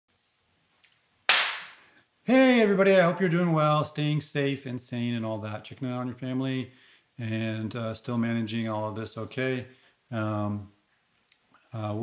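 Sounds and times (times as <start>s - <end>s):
sharp crack ringing in room: 0.8s - 2.1s.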